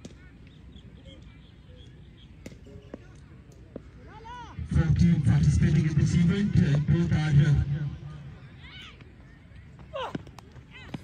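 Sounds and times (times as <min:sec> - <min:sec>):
loud male speech: 0:04.6 - 0:08.2.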